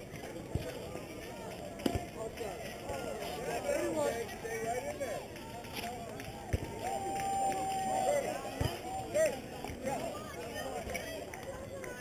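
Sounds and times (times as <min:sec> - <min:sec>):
crowd of voices chattering: 0:00.0 - 0:12.0.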